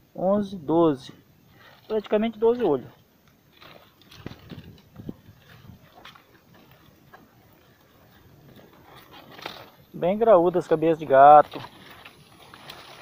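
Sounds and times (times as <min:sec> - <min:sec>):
footsteps crunching dry leaves: 0:00.9 - 0:13.0.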